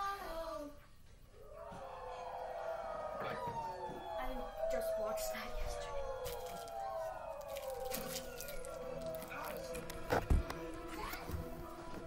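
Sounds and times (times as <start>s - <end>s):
singing from a tv: 1.5s - 12.0s.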